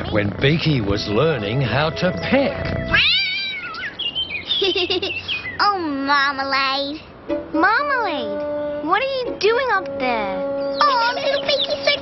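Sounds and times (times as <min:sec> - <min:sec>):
cartoon cat yowling: 0:02.9 - 0:04.0.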